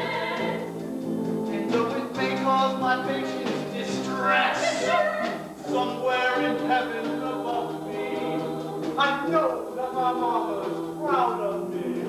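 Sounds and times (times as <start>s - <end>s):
voices singing in harmony: 0.0s - 12.0s.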